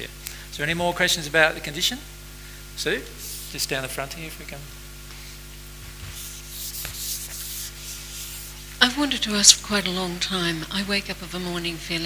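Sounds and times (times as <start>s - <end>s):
eraser rubbing on whiteboard: 3.2s - 3.6s, 5.9s - 9.0s.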